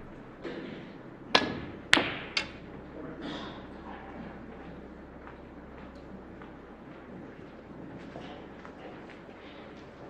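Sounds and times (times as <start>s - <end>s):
snooker balls clacking: 0.0s - 4.9s.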